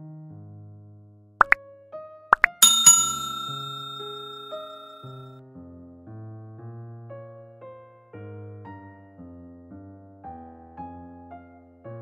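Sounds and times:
soft piano music: 1.4s - 12.0s
pops like button clicks: 2.4s - 2.6s
bright bell dings: 2.6s - 5.2s.

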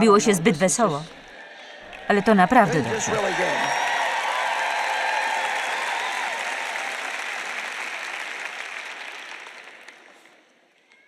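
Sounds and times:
large audience applauding: 1.2s - 11.0s.

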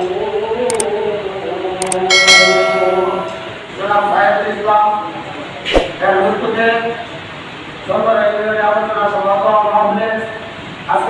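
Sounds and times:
short click: 1.8s - 3.5s
notification bell ding: 2.1s - 3.7s.

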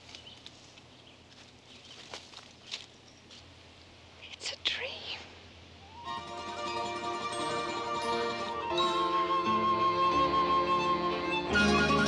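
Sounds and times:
low room hiss: 0.0s - 12.0s
person whispering: 4.2s - 5.4s.

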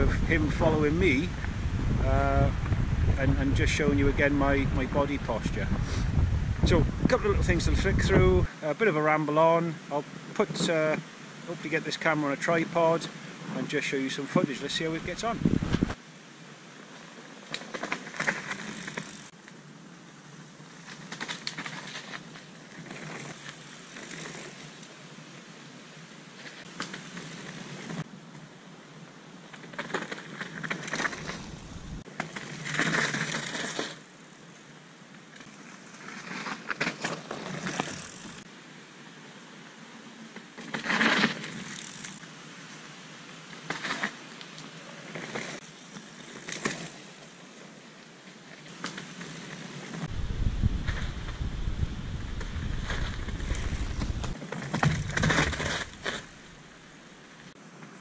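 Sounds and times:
bike tyres crackling over dirt: 14.7s - 58.0s.

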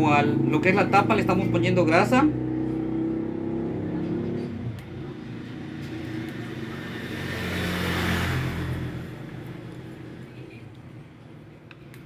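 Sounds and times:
vehicle engine rumbling past: 0.0s - 10.7s.

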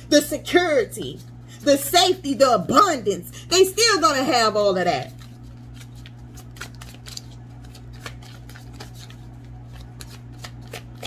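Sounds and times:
low steady hum: 0.0s - 11.0s
cards being shuffled: 5.0s - 11.0s.

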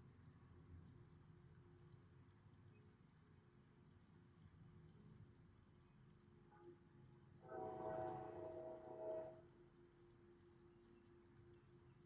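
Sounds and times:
faint train horn: 6.4s - 10.1s.

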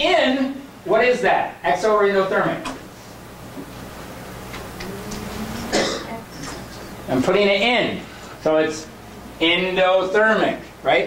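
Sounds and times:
steady low hum: 0.0s - 11.0s
person coughing: 5.7s - 6.6s.

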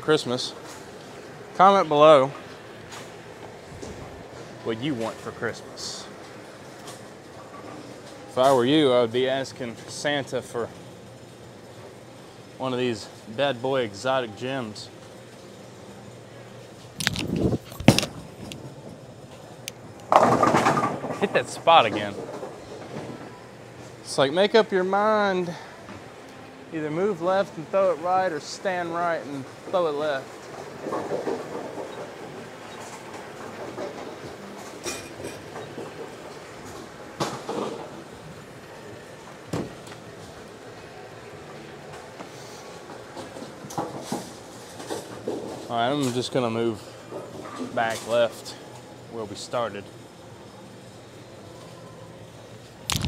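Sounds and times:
bowling ball rolling: 20.0s - 23.4s, 30.3s - 40.6s.

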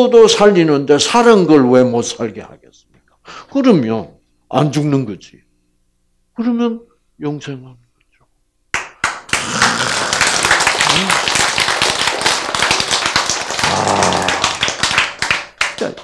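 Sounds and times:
audience clapping: 8.7s - 16.0s.

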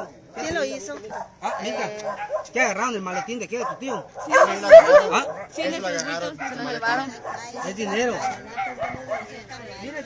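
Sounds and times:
people talking: 0.4s - 10.0s
dog yipping and whining: 4.2s - 5.5s.

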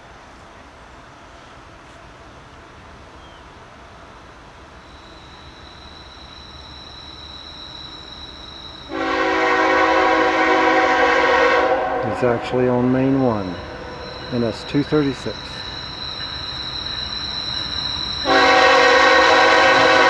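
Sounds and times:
train rumble: 0.0s - 20.0s
locomotive air horn chord: 8.9s - 14.0s, 18.2s - 20.0s.

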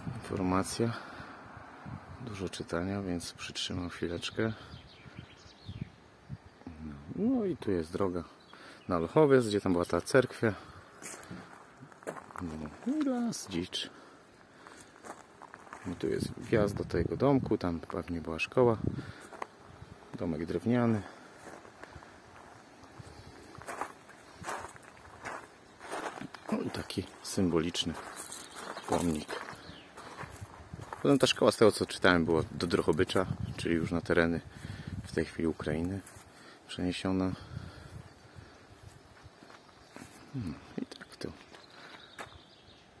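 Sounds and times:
footsteps outdoors: 7.7s - 43.0s.

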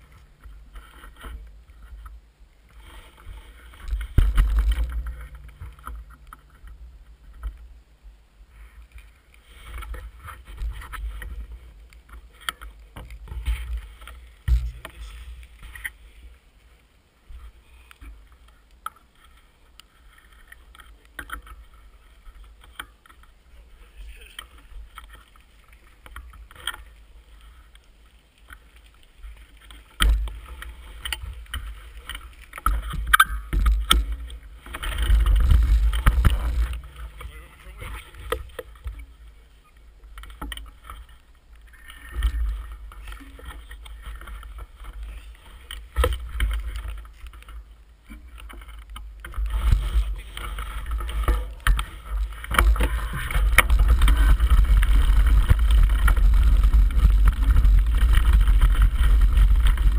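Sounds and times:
bike rumbling on gravel trail: 0.0s - 59.9s
low rumble and knocks on microphone: 14.4s - 15.4s.

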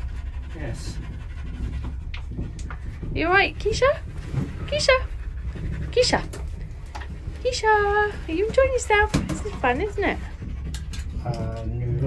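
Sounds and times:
dog panting: 0.0s - 12.0s
cable car cabin hum: 2.1s - 11.8s.

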